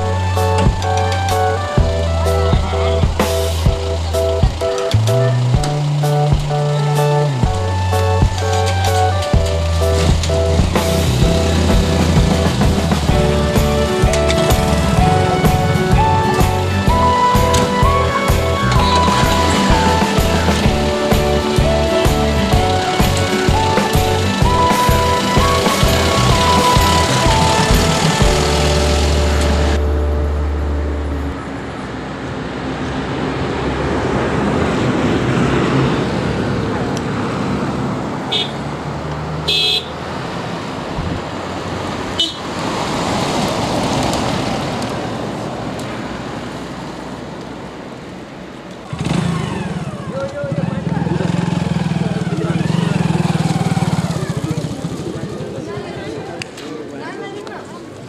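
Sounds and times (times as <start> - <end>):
vehicles driving past: 0.0 - 58.0
car horn toots: 14.1 - 22.0, 38.3 - 38.6, 39.4 - 40.0, 42.2 - 42.5.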